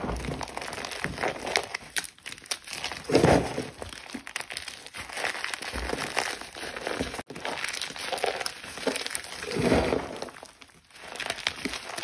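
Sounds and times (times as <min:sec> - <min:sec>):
cornstarch crunching in hand: 0:04.0 - 0:12.0.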